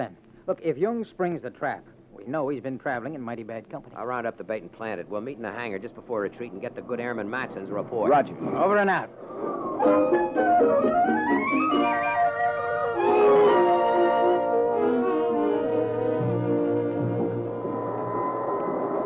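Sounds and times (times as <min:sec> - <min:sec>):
musical bridge with chords: 0:09.8 - 0:17.9.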